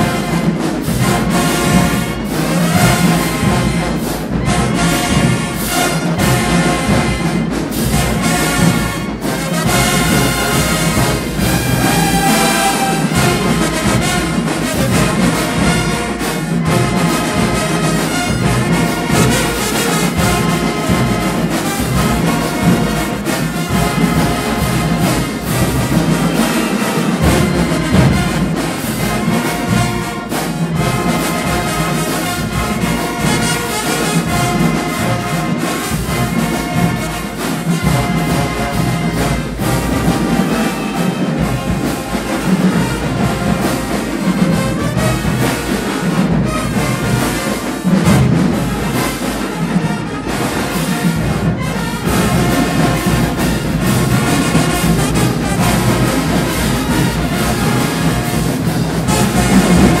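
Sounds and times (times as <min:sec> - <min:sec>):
marching band playing: 0:00.0 - 1:00.0.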